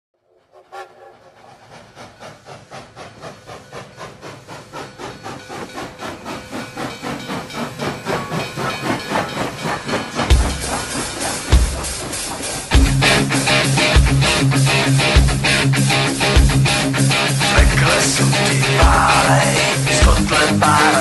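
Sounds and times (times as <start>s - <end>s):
rhythmic chugging music: 2.0s - 21.0s.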